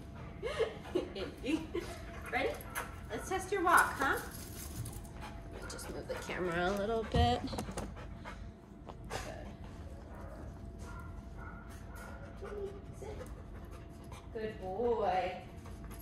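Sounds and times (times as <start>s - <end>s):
dog panting: 0.0s - 16.0s.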